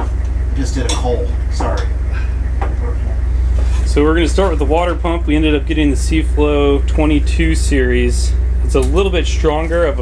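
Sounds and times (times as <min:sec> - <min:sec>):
loud low hum: 0:00.0 - 0:10.0.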